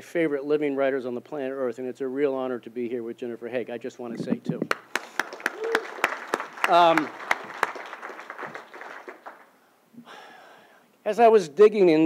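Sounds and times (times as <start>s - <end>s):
audience applause: 4.7s - 9.5s.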